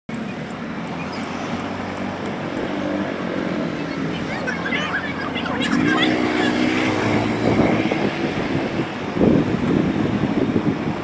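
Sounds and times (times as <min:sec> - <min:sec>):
wind and road noise: 0:00.1 - 0:11.0.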